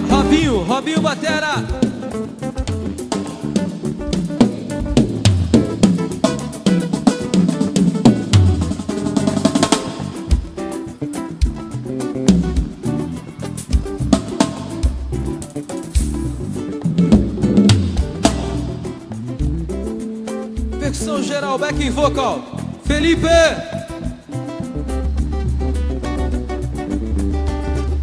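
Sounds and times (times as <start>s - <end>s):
drum kit playing: 0.0s - 28.0s
low bass notes: 0.0s - 28.0s.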